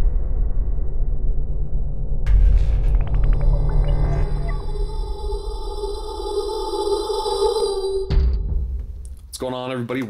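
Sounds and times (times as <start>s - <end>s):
deep bass: 0.0s - 5.8s
synthesized drone: 1.7s - 8.1s.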